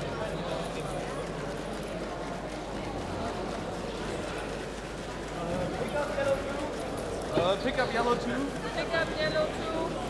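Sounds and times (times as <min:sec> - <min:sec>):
crowd chatter in large hall: 0:00.0 - 0:10.0.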